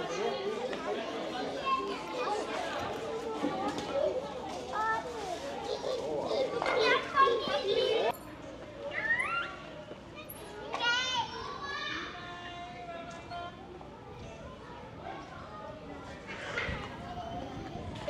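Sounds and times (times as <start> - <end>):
children chattering: 0.0 - 18.0.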